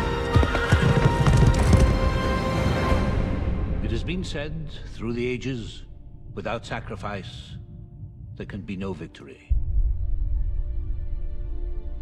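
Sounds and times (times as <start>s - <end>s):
orchestral film music: 0.0s - 12.0s.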